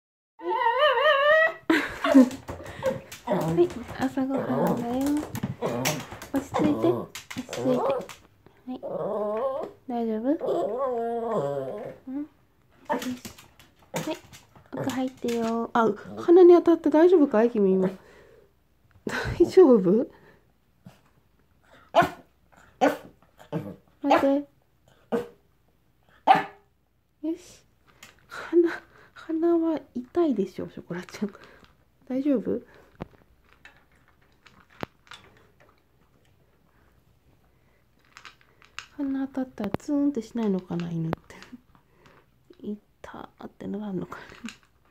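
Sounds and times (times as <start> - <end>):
dog whining: 0.4 - 8.2, 8.8 - 13.4
clicks and rattles: 2.2 - 8.3, 12.8 - 15.8, 38.0 - 39.0
small dog barking: 21.9 - 23.1, 26.2 - 26.6.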